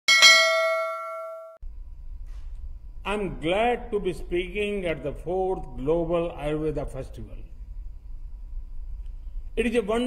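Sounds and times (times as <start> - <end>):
bright bell ding: 0.1 - 1.6.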